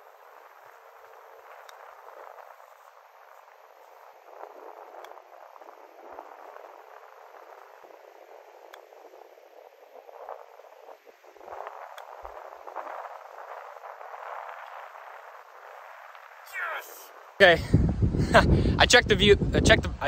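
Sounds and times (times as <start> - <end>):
outdoor background hiss: 0.0 - 20.0.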